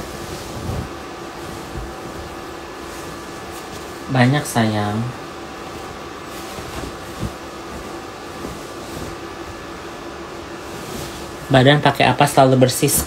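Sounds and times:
fan hum: 0.0 - 13.0.

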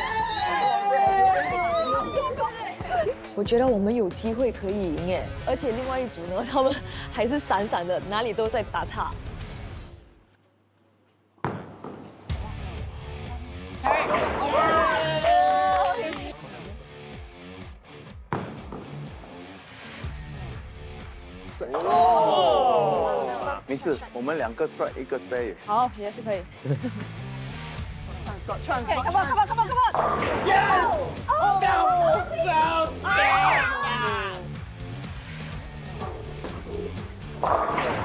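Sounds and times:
excited voices shouting: 0.0 - 3.2, 13.8 - 16.4, 21.8 - 23.6, 29.0 - 34.5
people cheering and screaming: 0.0 - 3.2, 13.9 - 16.3, 21.8 - 23.6, 29.7 - 34.5
background music: 0.0 - 10.2, 11.5 - 38.0
bowling ball rolling: 29.9 - 30.5, 35.9 - 38.0
bowling pins clattering: 37.4 - 38.0.

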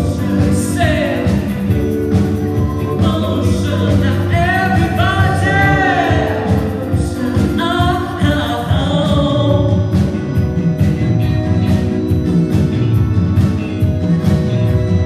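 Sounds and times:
person singing with vibrato: 0.0 - 10.5
live funk band playing: 0.0 - 15.0.

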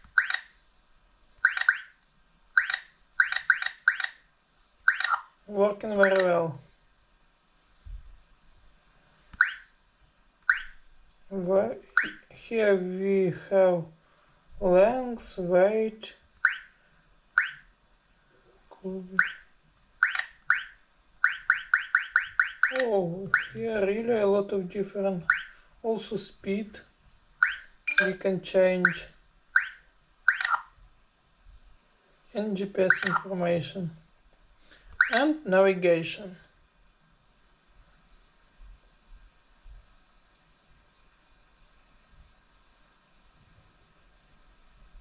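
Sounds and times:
touchscreen electronic blips: 0.0 - 0.6, 1.4 - 2.0, 2.6 - 4.2, 4.9 - 5.4, 9.4 - 9.7, 10.5 - 10.8, 11.9 - 12.3, 16.4 - 16.7, 17.4 - 17.7, 19.2 - 23.6, 27.4 - 28.2, 29.6 - 30.8, 32.9 - 33.3, 35.0 - 35.3.

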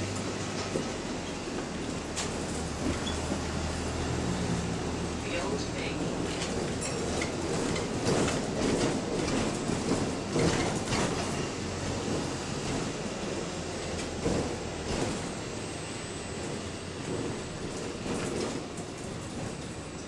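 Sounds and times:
bus engine and road rumble: 0.0 - 20.0
bus fittings knocking and rattling: 0.0 - 20.0.

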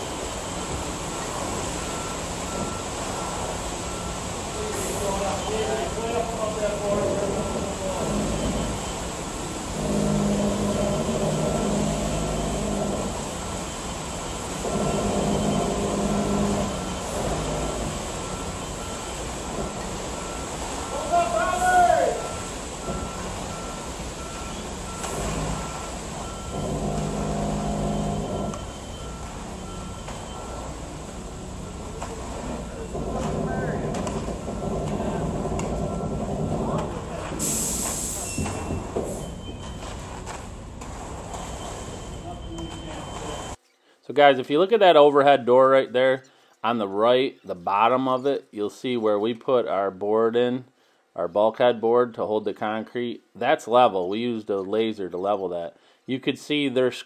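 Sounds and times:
backup alarm beeping: 0.0 - 43.6
construction machinery engines: 0.0 - 43.6.

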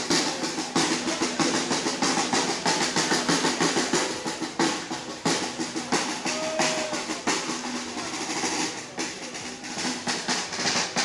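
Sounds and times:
snare drums beating a rhythm: 0.0 - 11.0.

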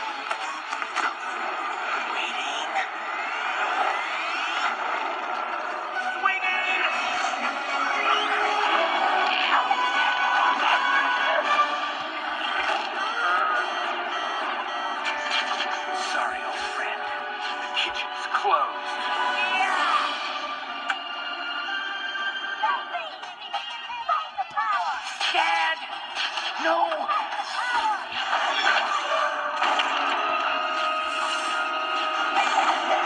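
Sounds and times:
cartoon soundtrack over laptop speakers: 0.0 - 33.0.

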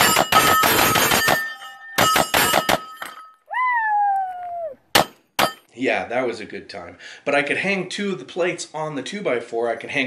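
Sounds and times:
pistol shots hitting steel plates: 0.0 - 3.4, 4.9 - 5.7
person whooping: 3.5 - 4.8.

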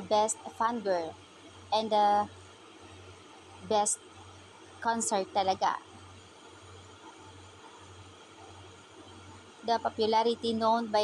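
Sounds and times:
faint background hiss: 0.0 - 11.0
low electrical hum: 0.0 - 11.0.

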